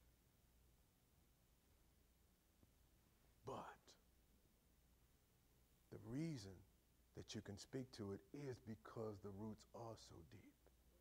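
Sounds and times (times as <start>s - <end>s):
man saying a quiet word: 3.4s - 4.0s, 6.0s - 10.6s.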